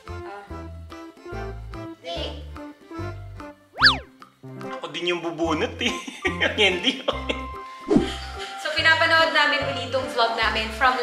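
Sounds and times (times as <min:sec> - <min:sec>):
cartoon boing sound effect: 0:03.8 - 0:04.1.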